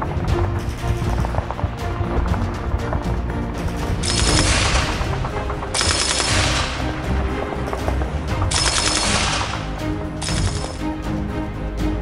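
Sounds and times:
background music: 0.0 - 12.0
machine gun bursts: 4.0 - 5.1, 5.7 - 6.9, 8.5 - 10.8.

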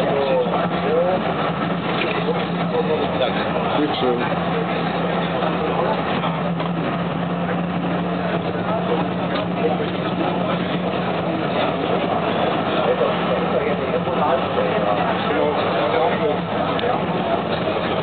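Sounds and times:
people talking indistinctly: 0.0 - 18.0
tram humming and rolling: 0.0 - 18.0.

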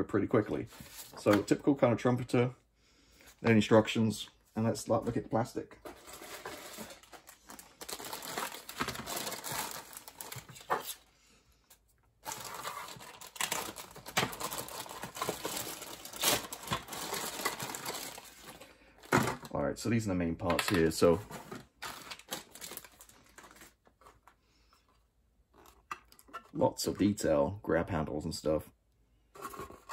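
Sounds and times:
plastic bags crinkling: 6.0 - 11.0, 12.2 - 19.6, 20.7 - 24.3
plastic parts clicking and knocking: 25.5 - 26.6.

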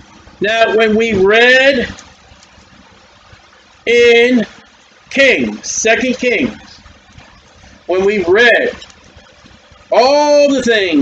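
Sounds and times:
faint room hiss: 0.0 - 11.0
man speaking: 0.4 - 2.0, 3.9 - 6.8, 7.9 - 8.8, 9.9 - 11.0.

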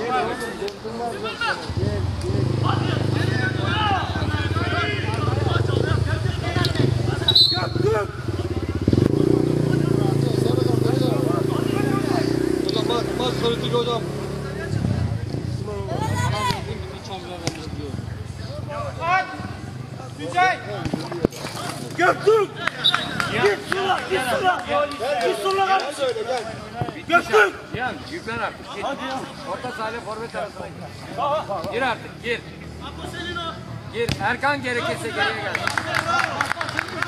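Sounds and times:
players shouting: 2.4 - 8.7, 21.5 - 30.5, 32.7 - 37.0.

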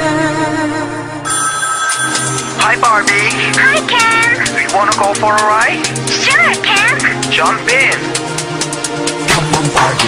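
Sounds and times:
electronic ringing tone: 1.2 - 3.0.

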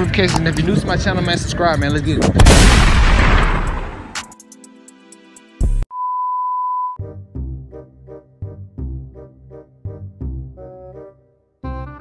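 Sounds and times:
steady beep tone: 5.9 - 7.0.

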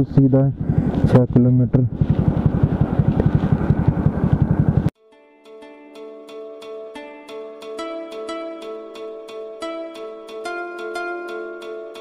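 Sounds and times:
motorcycle engine idling: 0.0 - 4.9
soft plucked string music: 5.1 - 12.0.

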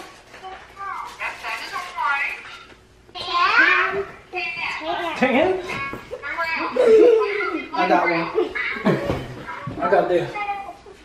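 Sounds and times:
children exclaiming and chattering: 3.1 - 11.0.

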